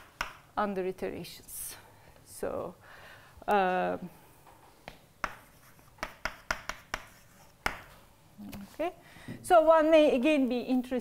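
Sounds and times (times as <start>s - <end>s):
chalk writing on a blackboard: 5.2s - 7.9s.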